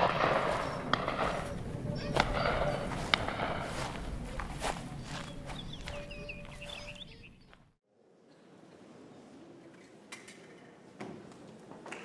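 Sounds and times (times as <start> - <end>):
bird-like chirping: 0.2 - 7.7.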